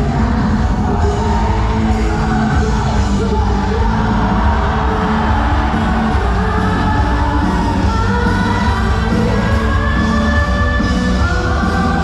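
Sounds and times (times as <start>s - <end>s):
cheer song over arena speakers: 0.0s - 12.0s
crowd shouting: 0.0s - 12.0s
crowd singing along: 0.0s - 12.0s.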